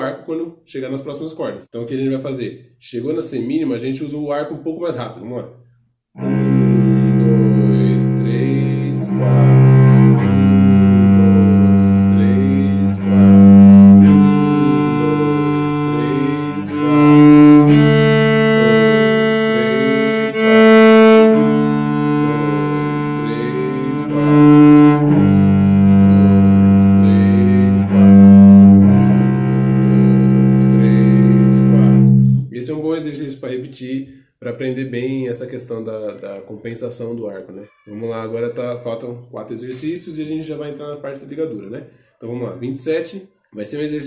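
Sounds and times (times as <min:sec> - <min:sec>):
cello bowing long notes: 0:06.2 - 0:32.5.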